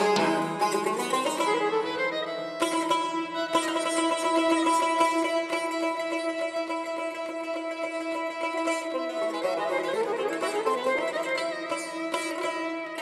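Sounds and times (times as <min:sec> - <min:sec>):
plucked lute melody: 0:00.0 - 0:13.0.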